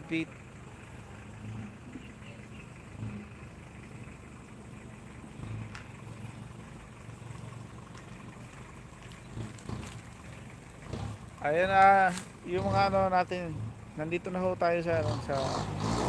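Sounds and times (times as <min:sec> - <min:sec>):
low outdoor rumble: 0:00.0 - 0:15.8.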